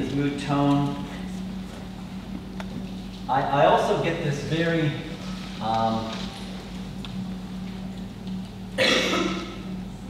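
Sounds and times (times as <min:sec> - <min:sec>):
faint low hum: 0:00.0 - 0:10.0
man coughing: 0:08.8 - 0:09.7.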